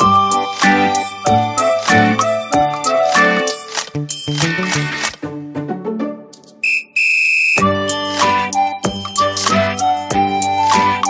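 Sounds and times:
high steady whistle: 6.6 - 7.7.

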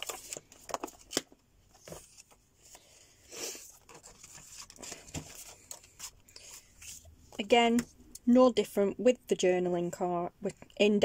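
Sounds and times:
paper rustling: 0.0 - 3.0, 3.6 - 7.1.

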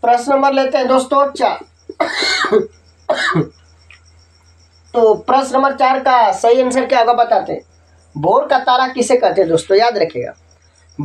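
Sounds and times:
man coughing: 1.9 - 3.5.

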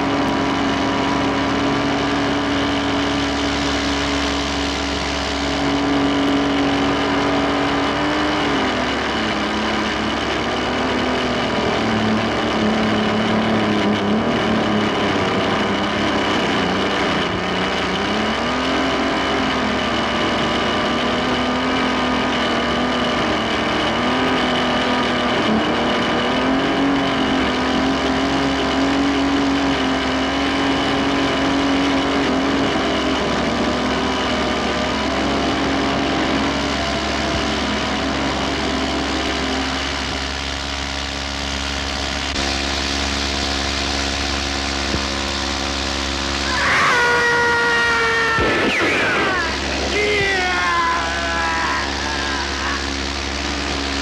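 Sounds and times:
propeller plane engine droning: 0.0 - 54.0.

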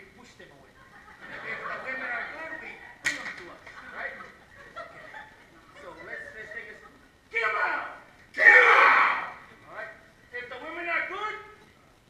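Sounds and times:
person loud vocal outburst: 7.4 - 9.5.

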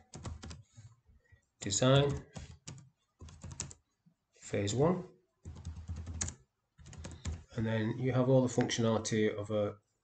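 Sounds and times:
computer keyboard typing: 0.0 - 0.7, 1.6 - 3.8, 5.4 - 7.5.

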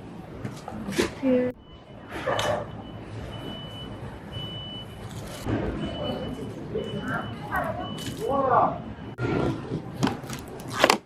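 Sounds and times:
store background noise: 0.0 - 11.0
high electronic beep: 5.8 - 8.2.

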